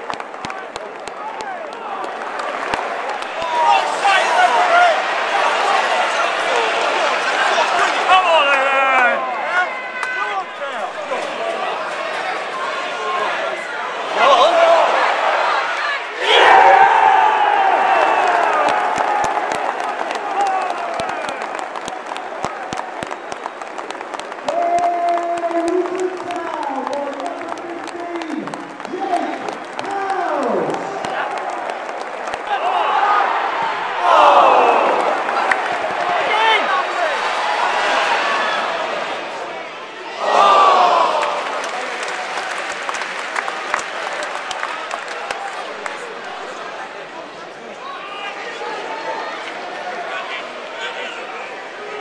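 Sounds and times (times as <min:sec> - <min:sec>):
sharp hand claps close by: 0:00.0 - 0:03.7, 0:18.2 - 0:32.5
crowd clapping and cheering: 0:00.0 - 0:47.2.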